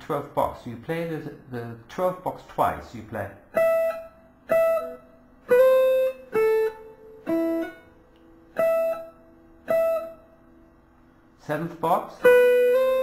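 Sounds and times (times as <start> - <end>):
electric guitar single notes: 3.5 - 10.6, 12.2 - 13.0.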